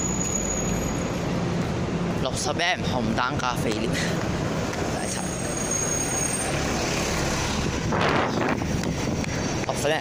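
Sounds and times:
bus engine rumble: 0:00.0 - 0:10.0.

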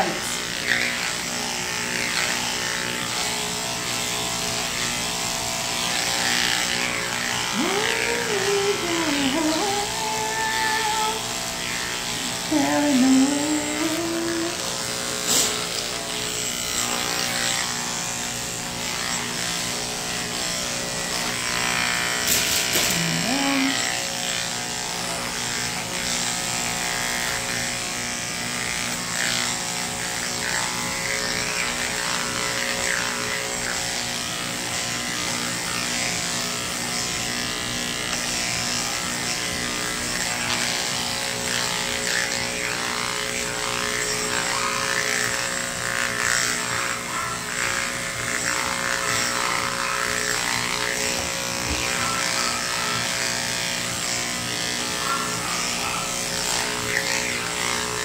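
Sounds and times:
electric clipper motor hum: 0:00.0 - 0:58.0.

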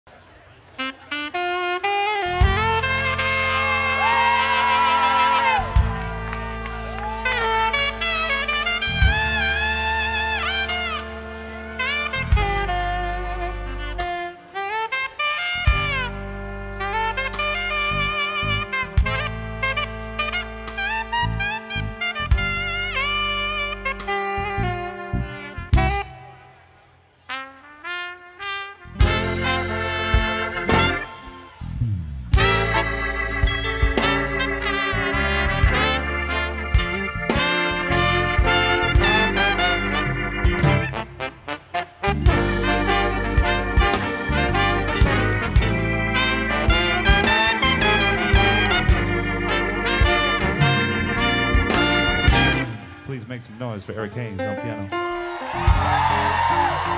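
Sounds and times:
horn phrases: 0:00.2 - 0:56.9
alto saxophone: 0:00.7 - 0:53.2
live band with bass and drums: 0:01.2 - 0:26.4, 0:28.9 - 0:53.0, 0:55.0 - 0:56.9.

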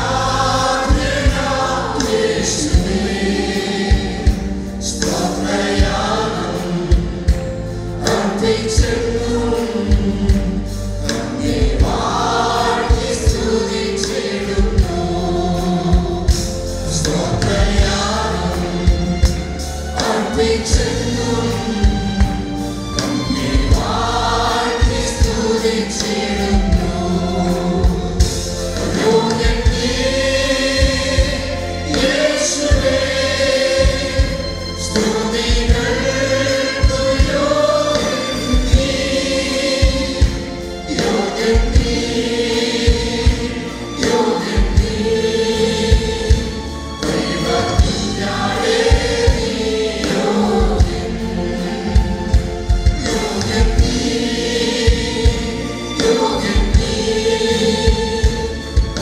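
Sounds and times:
group singing worship song: 0:00.0 - 0:59.0.

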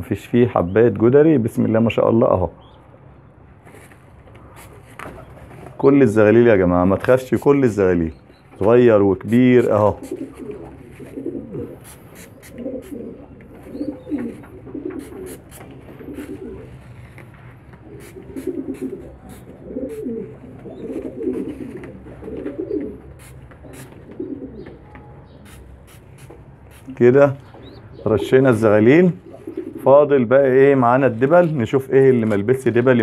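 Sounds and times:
pigeons cooing: 0:09.6 - 0:24.9, 0:27.6 - 0:30.4
spray bottle hisses: 0:11.8 - 0:13.0, 0:15.0 - 0:16.3, 0:18.0 - 0:20.1, 0:23.2 - 0:24.0, 0:25.5 - 0:27.0.

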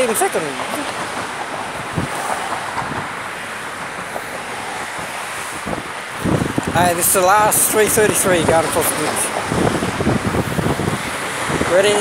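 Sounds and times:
road traffic noise: 0:00.0 - 0:12.0
wind on microphone: 0:00.6 - 0:12.0.

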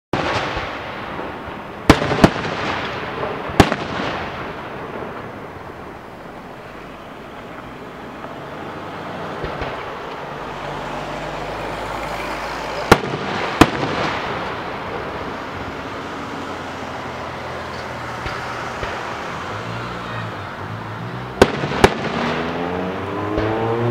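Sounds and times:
fireworks bangs: 0:00.1 - 0:23.9
continuous noisy rush: 0:00.2 - 0:23.9.

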